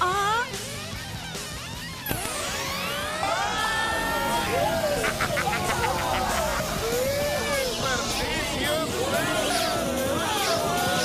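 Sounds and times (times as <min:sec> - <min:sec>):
warbling synthesized tones: 0:02.1 - 0:09.6.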